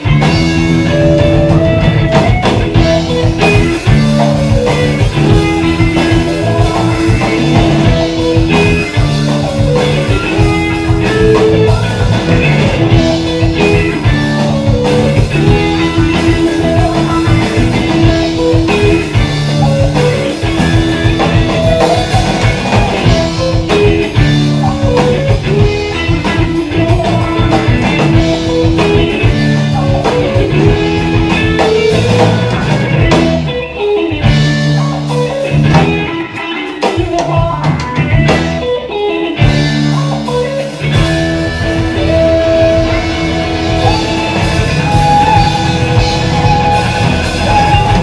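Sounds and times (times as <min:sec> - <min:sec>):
electric guitar lines: 0:00.0 - 0:48.0
live jam band playing: 0:00.0 - 0:48.0.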